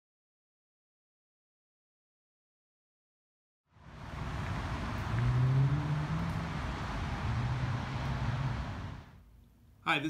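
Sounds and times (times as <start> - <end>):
rushing traffic background: 3.7 - 9.2
vehicle engine drone: 3.8 - 9.2.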